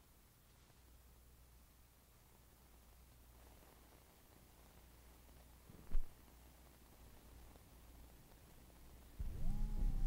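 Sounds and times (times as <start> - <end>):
tape hiss and hum: 0.0 - 10.0
loud hum with low tones: 9.2 - 10.0.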